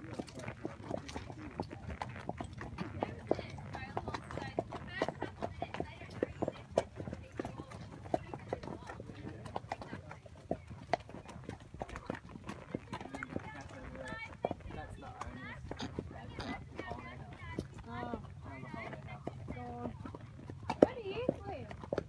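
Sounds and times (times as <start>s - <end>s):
faint voices: 0.0s - 21.8s
horses hooves clip-clopping on dirt: 0.0s - 22.0s.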